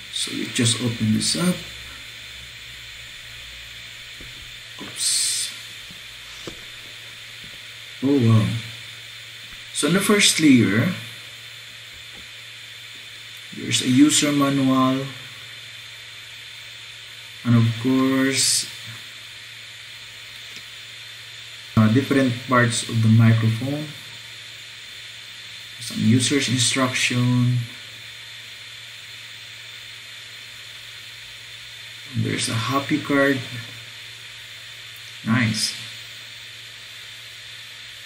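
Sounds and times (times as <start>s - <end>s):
low even hum: 0.0s - 38.0s
steady background hiss: 0.0s - 38.0s.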